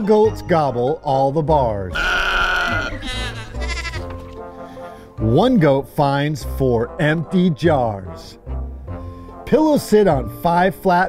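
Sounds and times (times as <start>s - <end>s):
background music: 0.0s - 11.0s
goat bleating: 1.9s - 4.4s.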